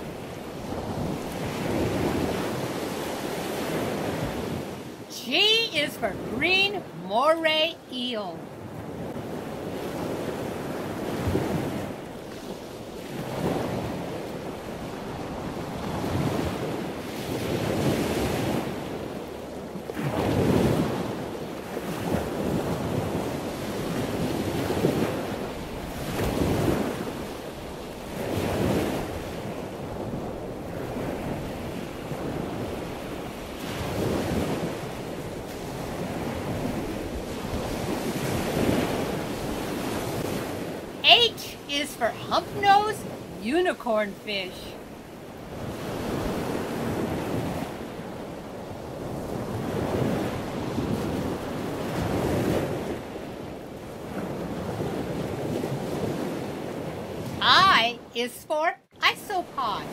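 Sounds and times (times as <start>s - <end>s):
ocean waves washing: 0.0s - 59.9s.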